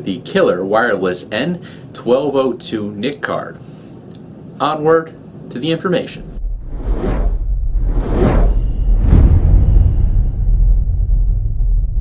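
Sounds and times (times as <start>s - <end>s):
deep steady rumble: 6.2s - 12.0s
whooshes: 6.2s - 12.0s.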